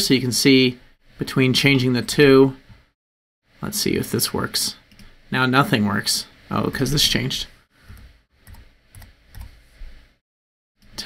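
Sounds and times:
computer keyboard keystrokes: 0:07.9 - 0:09.6.

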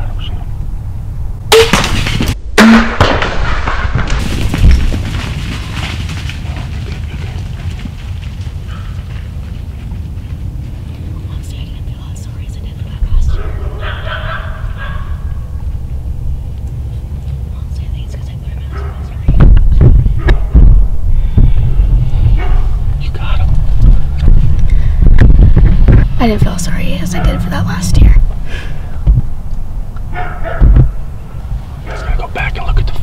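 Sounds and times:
sharp crack: 0:01.5 - 0:06.4.

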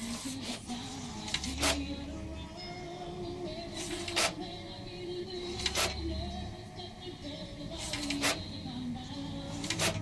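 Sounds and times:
printer carriage passes: 0:00.0 - 0:02.0, 0:03.6 - 0:04.5, 0:05.3 - 0:06.2, 0:07.7 - 0:08.6, 0:09.4 - 0:10.0
steady printer hum: 0:00.0 - 0:10.0.

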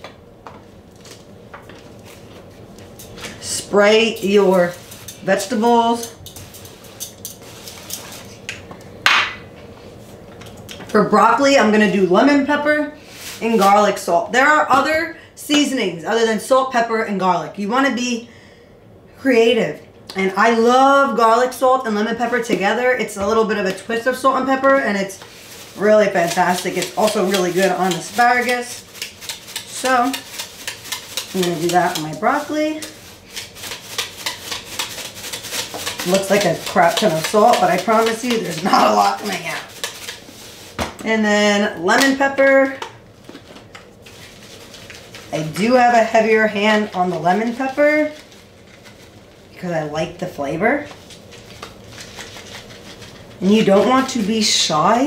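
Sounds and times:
shaker bottle shaking: 0:25.2 - 0:40.7, 0:50.9 - 0:54.2.

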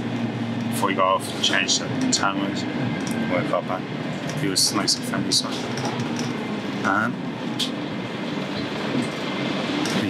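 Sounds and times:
bus engine hum: 0:00.0 - 0:10.0
road noise: 0:00.0 - 0:10.0.

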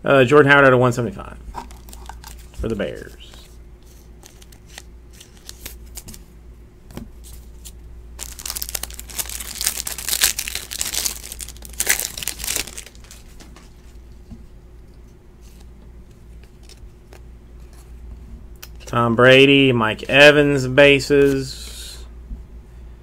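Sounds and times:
plastic wrapper tearing and crinkling: 0:01.7 - 0:02.5, 0:04.2 - 0:06.1, 0:07.5 - 0:13.4.

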